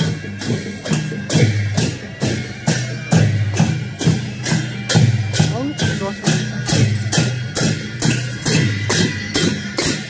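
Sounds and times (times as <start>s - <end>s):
deep drum beats: 0.0s - 10.0s
hand cymbals clashing: 0.0s - 10.0s.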